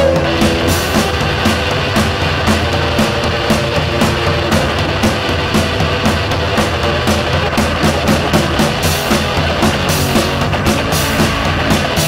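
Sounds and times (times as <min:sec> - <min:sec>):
distorted electric guitar: 0:00.0 - 0:12.0
drum kit fast beat: 0:00.0 - 0:12.0.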